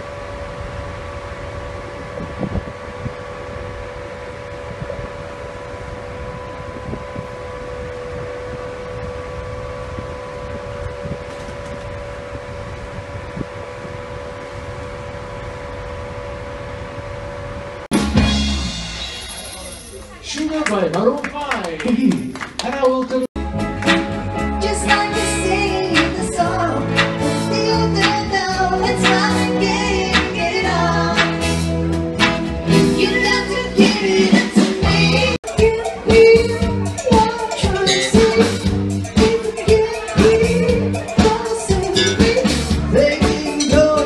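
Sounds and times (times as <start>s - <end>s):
ship machinery hum: 0.0s - 21.0s, 23.4s - 44.0s
live band with drums: 17.9s - 22.3s, 23.4s - 44.0s.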